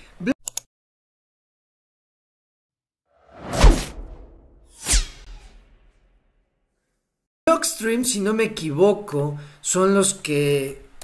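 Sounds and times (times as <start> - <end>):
whoosh sound effects: 3.3 - 6.1
low rumble: 3.4 - 5.9.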